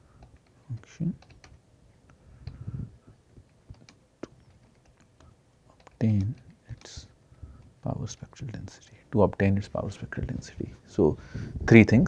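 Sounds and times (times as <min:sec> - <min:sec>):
computer keyboard typing: 0:00.2 - 0:01.6, 0:03.5 - 0:07.0.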